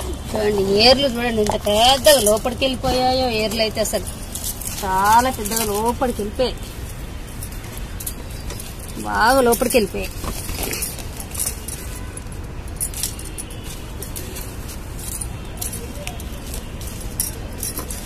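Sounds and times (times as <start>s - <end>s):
glass bangles clinking: 0.0s - 18.0s.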